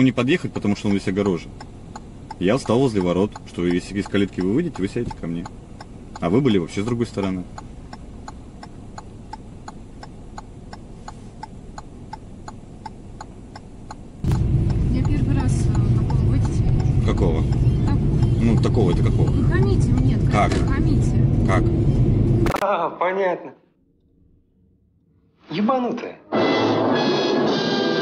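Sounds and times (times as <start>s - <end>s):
car turn signal clicking: 0.0s - 20.9s
car driving rumble: 0.0s - 22.6s.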